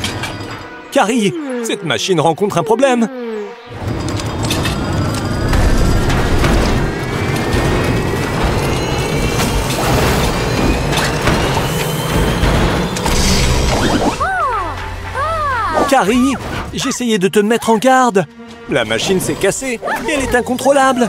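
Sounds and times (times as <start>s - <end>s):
background music: 0.0s - 21.0s
low rumble: 3.7s - 13.8s
mechanical clanks and rattles: 3.7s - 13.8s.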